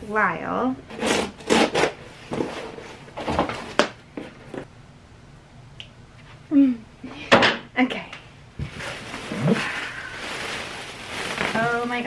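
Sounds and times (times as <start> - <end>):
packaging rustling: 8.6 - 12.0.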